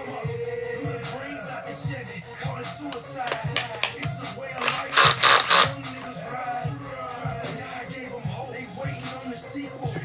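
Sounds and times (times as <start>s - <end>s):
hip hop music: 0.0s - 10.0s
cordless drill spinning: 3.7s - 5.8s.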